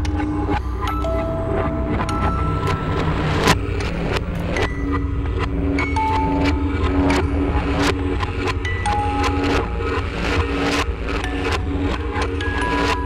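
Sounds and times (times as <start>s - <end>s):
eerie held notes: 0.0s - 13.0s
low rumbling drone: 0.0s - 13.0s.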